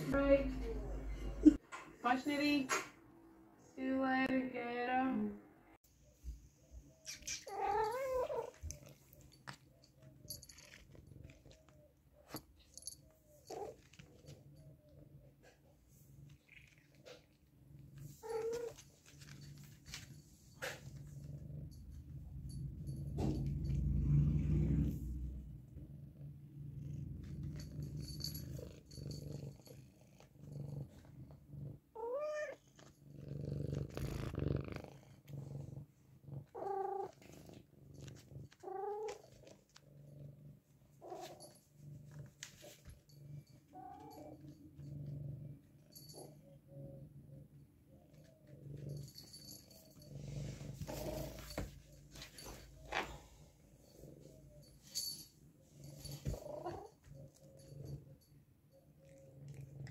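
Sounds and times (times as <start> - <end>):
cat purring: 6.0 - 59.9
cat meowing: 7.1 - 8.8, 32.0 - 32.6.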